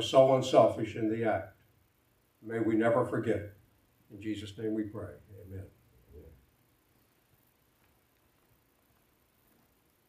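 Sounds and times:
man speaking: 0.0s - 1.6s, 2.4s - 6.4s.

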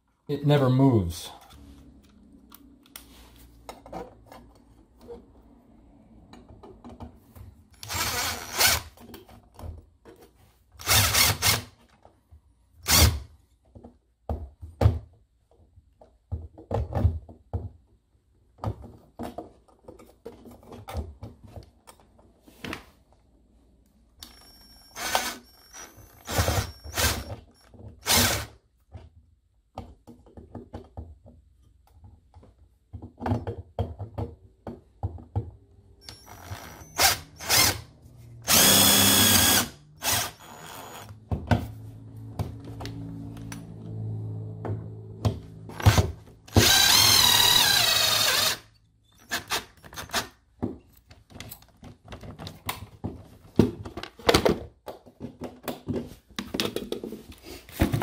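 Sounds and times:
cordless drill driving screws: 7.8s - 9.0s, 10.8s - 11.7s, 12.8s - 13.2s, 24.3s - 28.5s, 36.0s - 41.2s, 45.7s - 50.3s
tool handling clicks and knocks: 49.2s - 58.0s.

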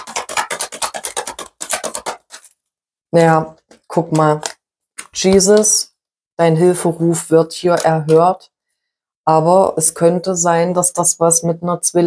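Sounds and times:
cards being shuffled: 0.0s - 2.6s.

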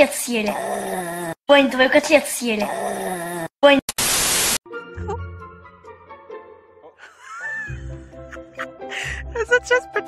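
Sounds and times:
static hiss burst: 3.9s - 4.6s.

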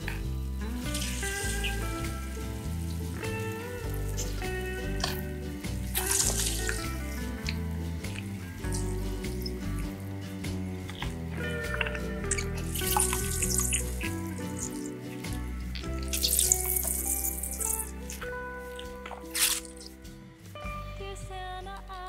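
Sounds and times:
background music: 0.0s - 22.0s
liquid splashing into bowl: 3.2s - 9.7s, 10.9s - 19.9s.

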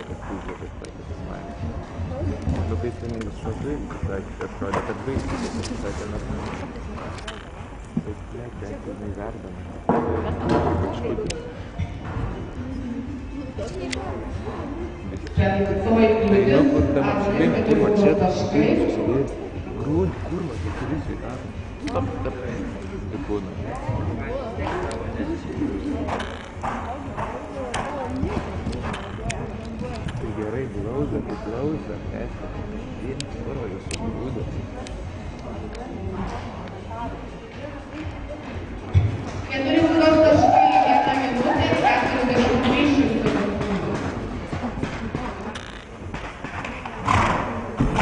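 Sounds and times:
people's voices: 0.0s - 48.0s.

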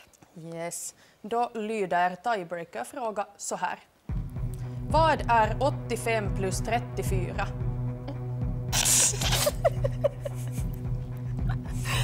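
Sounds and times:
background music: 4.0s - 12.0s
woman giggling: 8.8s - 12.0s.

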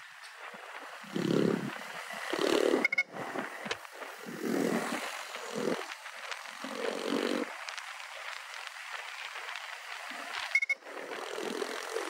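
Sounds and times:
loud crackle: 0.0s - 12.0s
motorcycle engine rumble: 0.0s - 12.0s
wind and road noise: 0.0s - 12.0s.

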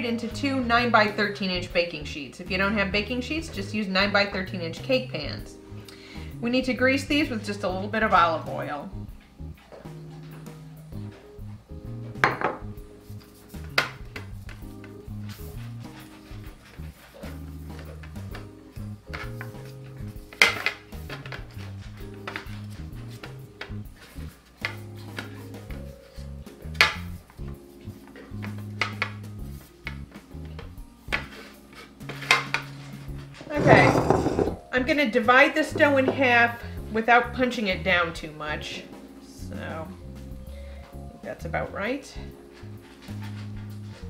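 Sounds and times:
metal pans clanking on counter: 33.4s - 34.6s.

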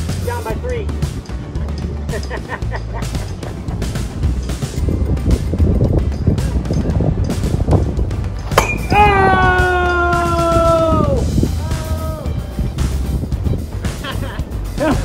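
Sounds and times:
background music: 0.0s - 15.0s
bat cracking against softball: 8.4s - 9.0s
celebratory yell: 8.9s - 12.3s.

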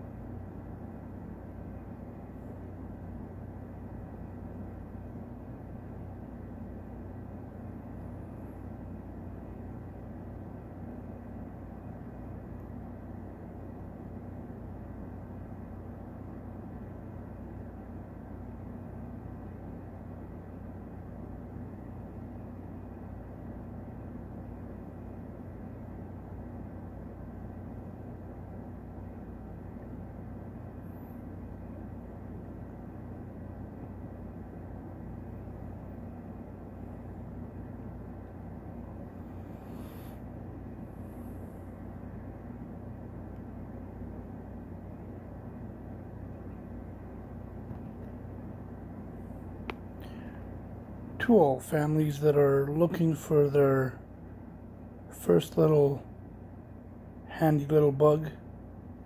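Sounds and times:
low mechanical hum: 0.0s - 59.0s.

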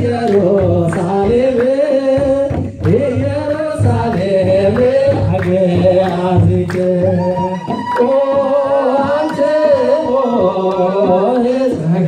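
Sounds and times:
man singing a hymn: 0.0s - 12.0s.

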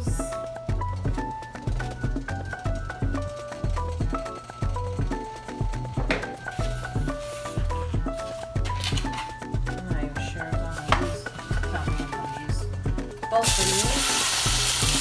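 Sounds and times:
background music with beat: 0.0s - 15.0s.

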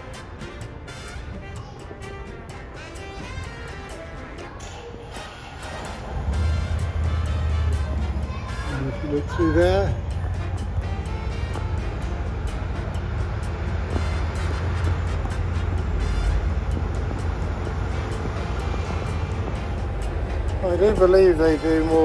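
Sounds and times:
background music: 0.0s - 22.0s
city traffic rumble: 0.0s - 22.0s.

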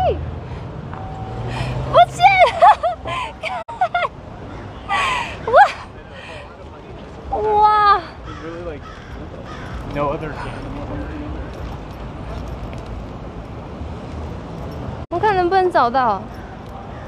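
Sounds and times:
street traffic noise: 0.0s - 17.0s.

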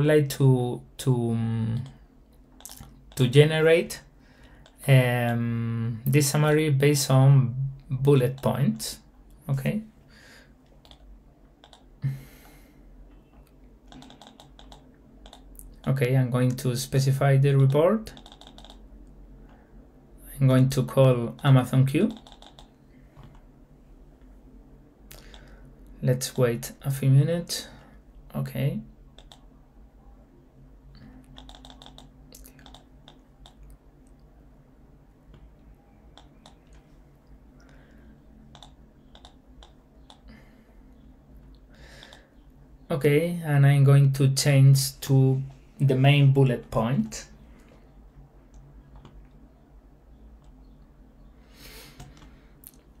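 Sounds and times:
mouse clicks: 2.6s - 3.2s, 10.7s - 11.9s, 13.9s - 15.5s, 18.1s - 18.8s, 22.1s - 23.4s, 29.2s - 29.5s, 31.2s - 33.8s, 36.1s - 36.8s, 38.5s - 40.3s
keyboard typing: 2.6s - 3.3s, 10.7s - 11.9s, 13.8s - 15.6s, 17.6s - 18.8s, 22.1s - 23.4s, 29.2s - 29.5s, 31.2s - 33.8s, 35.3s - 36.8s, 38.5s - 40.3s, 48.5s - 49.4s
breath-like noise: 41.7s - 42.4s.

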